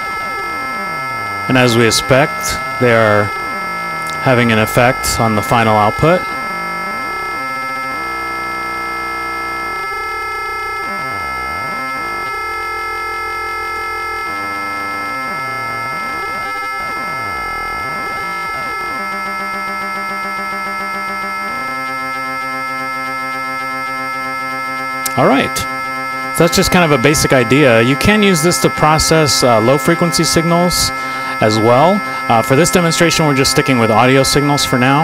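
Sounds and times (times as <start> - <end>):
ring-modulated synthesizer drone: 0.0 - 35.0.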